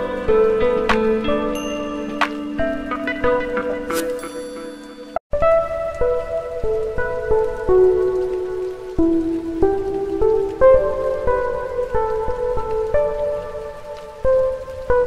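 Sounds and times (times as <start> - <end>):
slow piano melody: 0.0 - 15.0.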